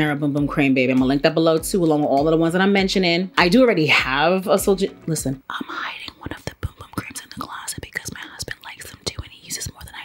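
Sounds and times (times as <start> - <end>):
woman whispering: 5.4 - 10.0.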